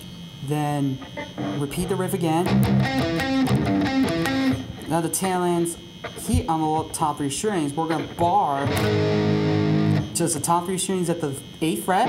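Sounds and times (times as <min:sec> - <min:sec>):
electric guitar riff: 0:00.9 - 0:06.9, 0:07.7 - 0:10.5.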